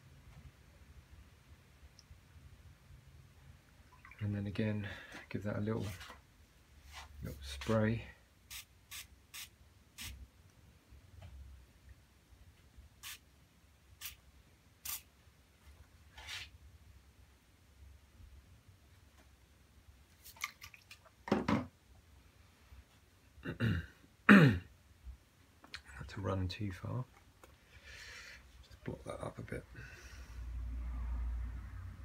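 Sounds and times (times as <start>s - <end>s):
spray bottle squirts: 8.5s - 10.2s, 13.0s - 13.2s, 14.8s - 15.1s.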